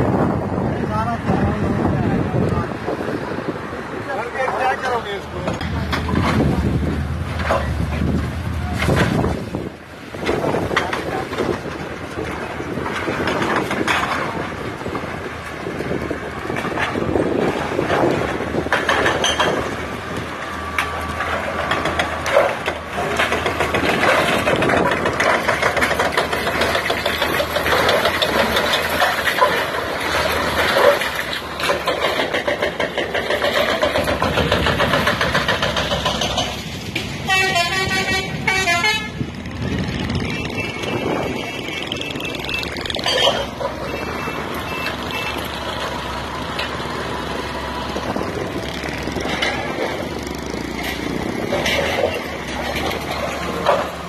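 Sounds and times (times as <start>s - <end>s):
heavy engines running: 0.0s - 54.0s
street traffic: 0.0s - 54.0s
vehicle horns honking: 37.2s - 39.3s, 40.2s - 45.5s
pulsing multi-tone horn: 37.3s - 39.2s, 40.2s - 45.4s.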